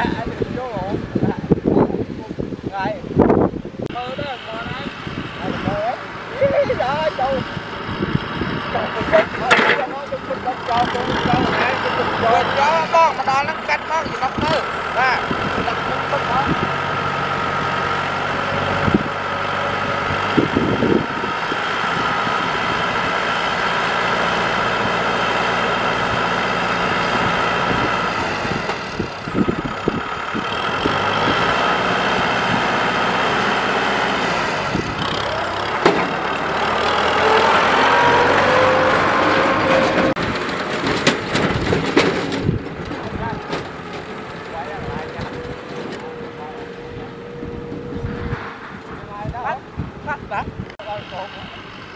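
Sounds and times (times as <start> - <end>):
tractor diesel engine running: 3.6 - 51.9
knocks and clatters: 9.1 - 10.1, 35.6 - 36.3, 38.3 - 46.9.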